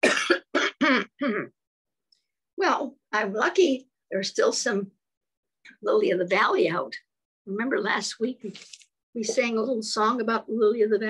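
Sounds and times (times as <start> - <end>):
woman coughing: 0.0 - 1.6.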